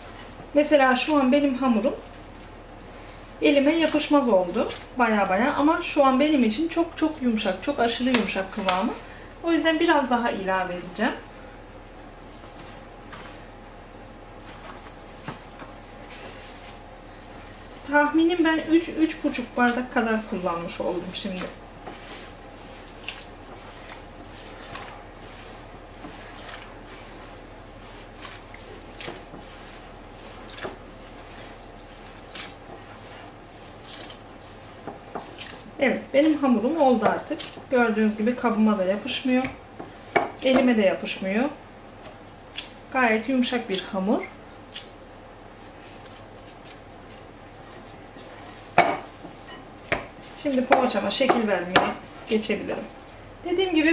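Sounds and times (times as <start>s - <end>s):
dough squishing: 0.0s - 53.9s.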